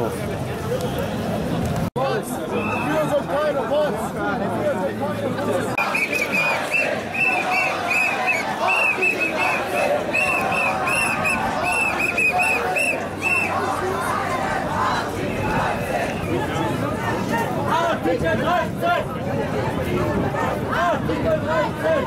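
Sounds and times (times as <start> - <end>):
crowd talking and shouting: 0.0 - 22.0.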